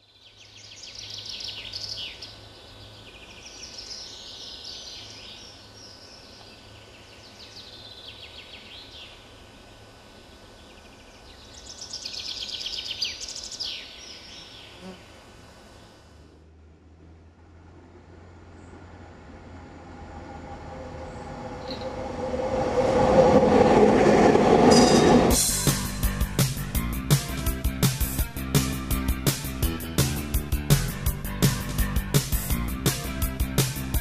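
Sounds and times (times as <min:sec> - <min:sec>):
songbirds trilling and chirping: 0:00.0 - 0:16.0, 0:21.1 - 0:22.0.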